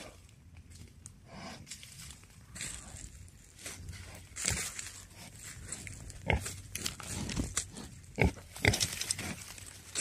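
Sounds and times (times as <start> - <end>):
wild pig grunting: 6.0 - 9.5.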